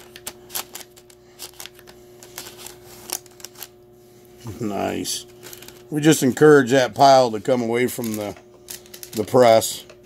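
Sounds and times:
faint steady hum: 0.0 - 10.0
rosin press clicks and crackles: 7.9 - 10.0.

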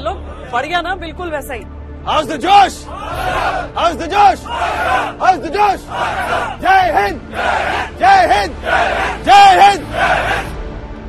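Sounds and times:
soldiers shouting in unison: 2.6 - 10.6.

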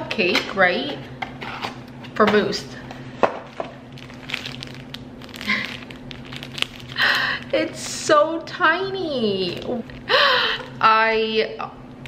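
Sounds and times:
low steady hum: 0.0 - 12.0
plastic bag rustle: 3.4 - 8.1, 8.9 - 10.9.

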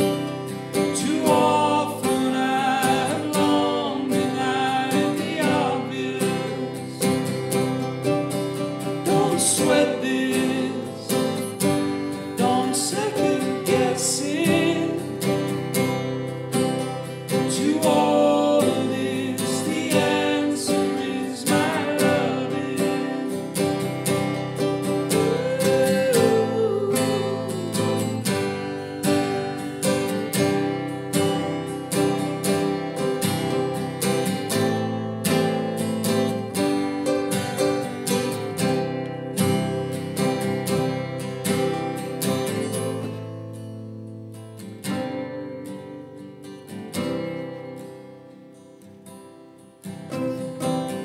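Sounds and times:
acoustic guitars strumming: 0.0 - 51.0.

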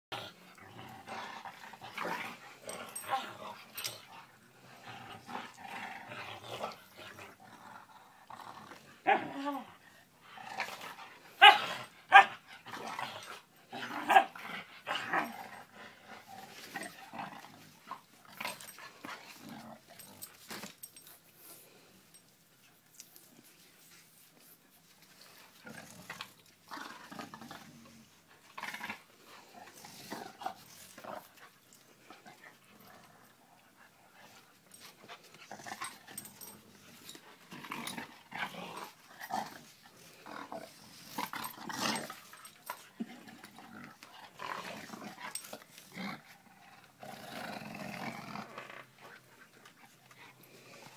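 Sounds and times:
dogs growling: 0.1 - 21.6, 25.2 - 50.9.

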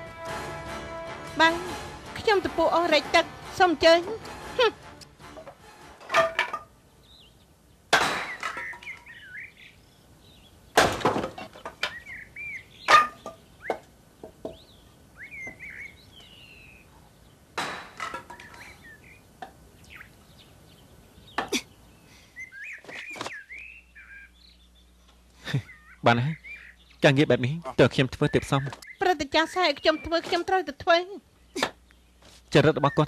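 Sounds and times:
birds chirping: 1.4 - 33.0.

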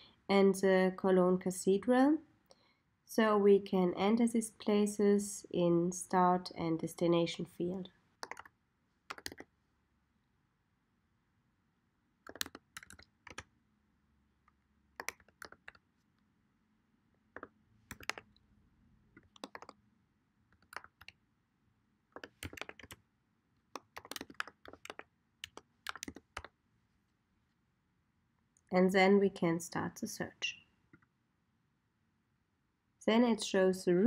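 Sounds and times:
keyboard typing clicks: 8.2 - 8.5, 9.1 - 9.5, 12.2 - 13.5, 14.5 - 15.8, 17.4 - 18.4, 19.2 - 19.8, 20.5 - 21.2, 22.2 - 23.0, 23.7 - 26.6.

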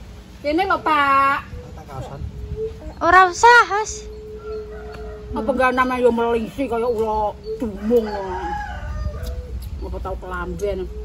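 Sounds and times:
rooster crowing: 4.1 - 6.5, 7.4 - 9.8.

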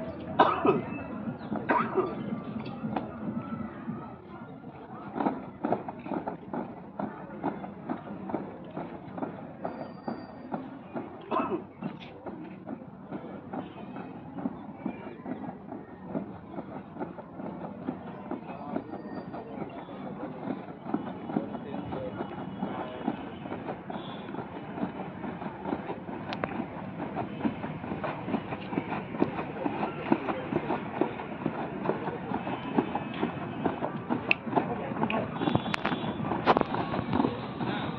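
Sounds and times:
boots stamping on dirt: 20.4 - 37.9.

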